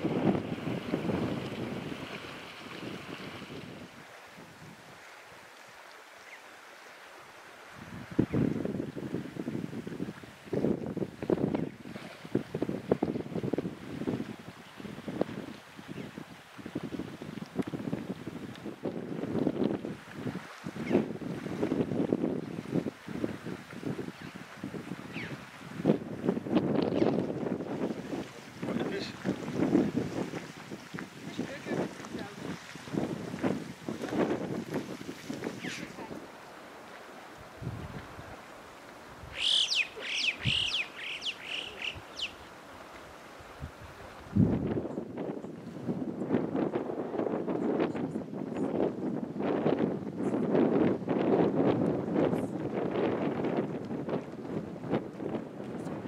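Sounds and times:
wind buffeting microphone: 0:00.0 - 0:05.0, 0:07.7 - 0:42.4, 0:43.4 - 0:56.0
bird chirping: 0:39.4 - 0:42.4.

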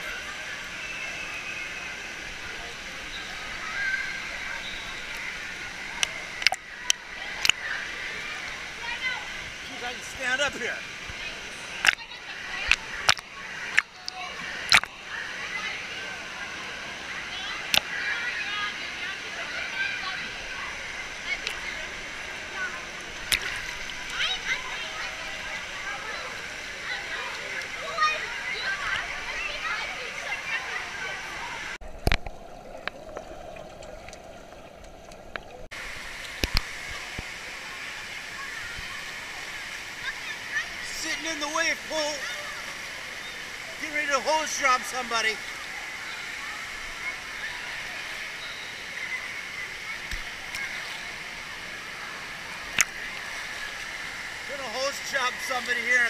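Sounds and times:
water sloshing and lapping: 0:00.0 - 0:15.1, 0:17.3 - 0:55.8
sharp water splashes: 0:00.8 - 0:09.5, 0:10.6 - 0:15.1, 0:20.7 - 0:37.3.

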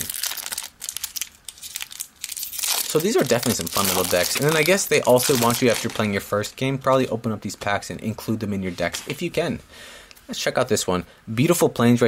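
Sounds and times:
plastic wrapper crinkling: 0:00.0 - 0:06.2.

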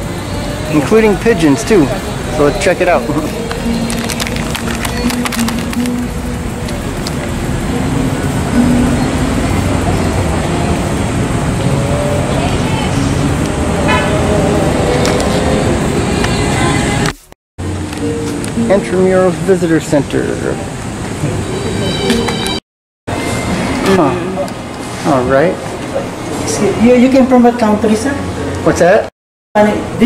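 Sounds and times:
dense city traffic: 0:00.0 - 0:30.0
vehicle horn toots: 0:13.8 - 0:14.4.

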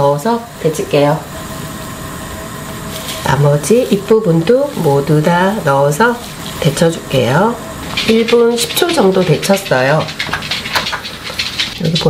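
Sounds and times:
water boiling in a pan: 0:00.0 - 0:12.0
person speaking: 0:03.1 - 0:10.7, 0:11.6 - 0:12.0.

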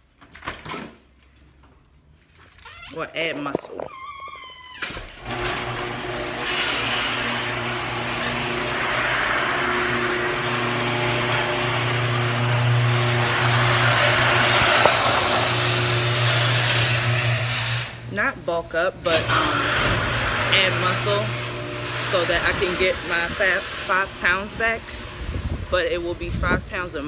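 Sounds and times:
garage door opener motor: 0:04.6 - 0:18.1, 0:19.0 - 0:25.6.

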